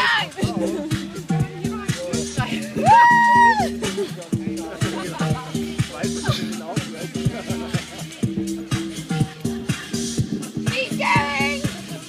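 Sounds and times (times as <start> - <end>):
woman shouting high: 0.0 - 0.4, 2.7 - 3.7
dance music with steady beat: 0.0 - 12.0.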